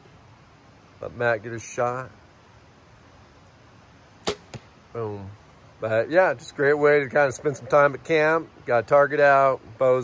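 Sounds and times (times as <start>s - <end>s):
arrow hitting target: 4.2s - 4.7s
bowstring snap: 4.2s - 4.7s.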